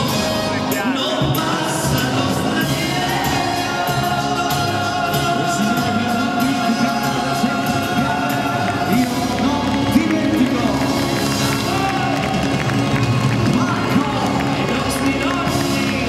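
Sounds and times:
crowd cheering and shouting: 0.0s - 16.0s
live band with horns: 0.0s - 16.0s.

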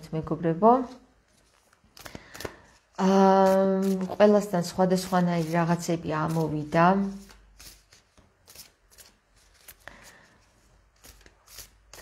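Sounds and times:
cards being shuffled by hand: 1.2s - 12.0s.

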